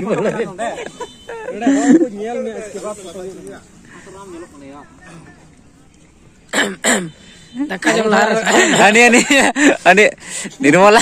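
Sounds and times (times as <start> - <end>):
person coughing: 6.5 - 7.2.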